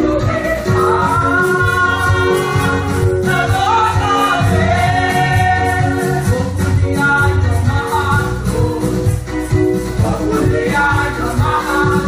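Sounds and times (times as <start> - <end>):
amplified backing music: 0.0 - 12.0
women singing gospel song: 0.0 - 12.0.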